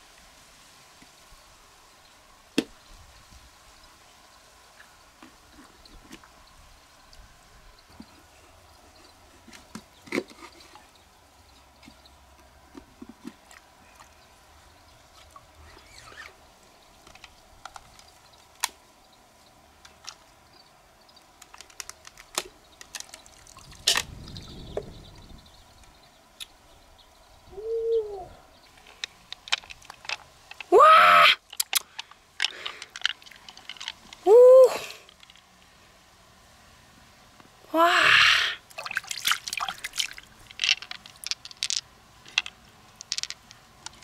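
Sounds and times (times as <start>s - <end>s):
woman exclaiming: 30.7s - 31.4s, 34.2s - 35.0s, 37.7s - 38.6s
mussel shell clicks and taps: 40.5s - 44.0s.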